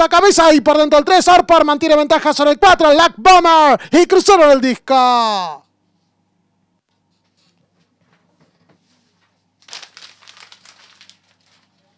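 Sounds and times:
faint crinkling rustle: 7.0 - 11.9.

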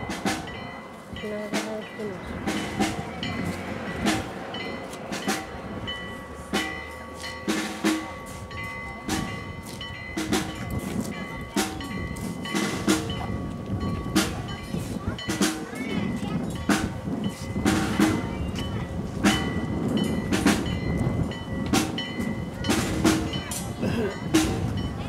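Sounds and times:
bells ringing: 0.0 - 25.0.

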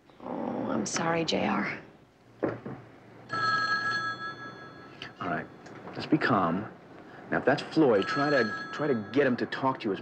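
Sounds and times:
telephone bell ringing: 3.3 - 5.6, 7.8 - 9.6.

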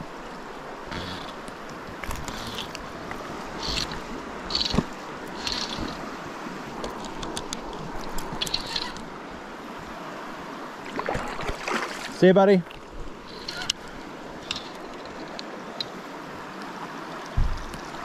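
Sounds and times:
river current rushing: 0.0 - 18.0
water splashes: 0.0 - 18.0.

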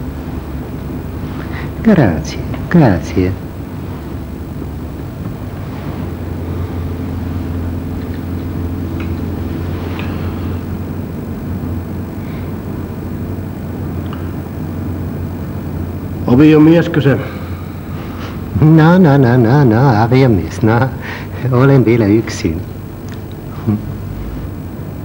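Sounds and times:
engine and road drone inside vehicle: 0.0 - 25.0.

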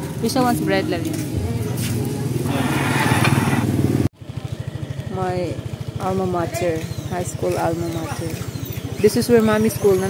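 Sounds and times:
motorcycle engine idling: 0.0 - 10.0
motorcycle engine passing close: 0.0 - 10.0.

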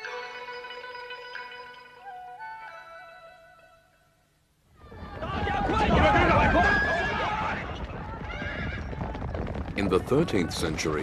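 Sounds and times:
galloping hooves rumble: 4.9 - 11.0
horses whinnying: 5.2 - 9.4.

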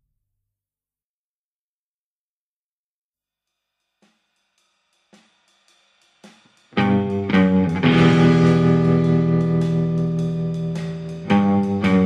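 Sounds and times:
hi-hat ticks: 3.5 - 12.0
loud band with drums and guitar: 6.7 - 12.0.

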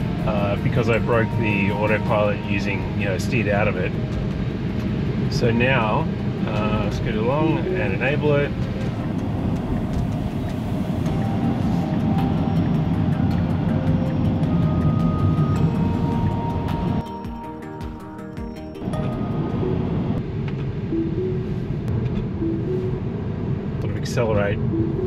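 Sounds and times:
car road noise rumble: 0.0 - 17.0, 18.8 - 25.0
background music: 0.0 - 24.0, 24.6 - 25.0.

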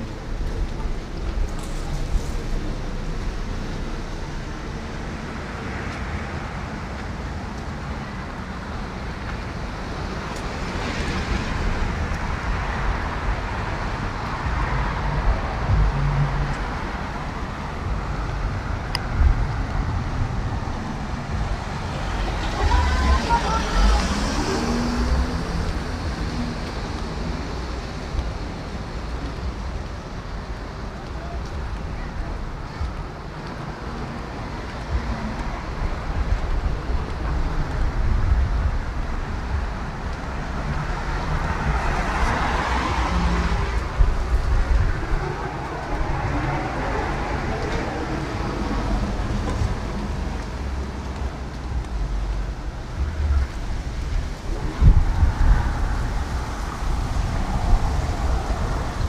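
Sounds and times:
cars passing: 0.0 - 59.0.

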